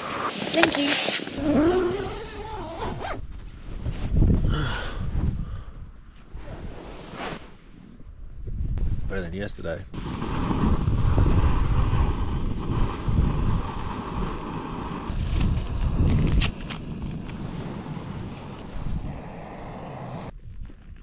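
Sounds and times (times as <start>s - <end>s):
wind buffeting microphone: 1.4s - 6.8s, 8.0s - 21.0s
steady rushing noise: 10.0s - 20.4s.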